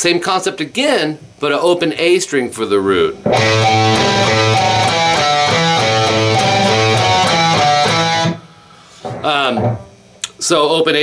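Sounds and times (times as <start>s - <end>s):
electric guitar riff: 3.3s - 9.8s.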